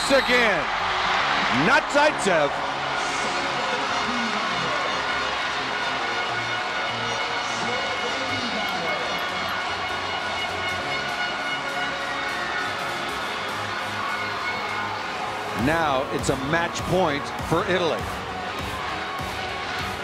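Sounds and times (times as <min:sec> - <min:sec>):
crowd cheering: 0:00.0 - 0:20.0
music over loudspeakers: 0:01.2 - 0:20.0.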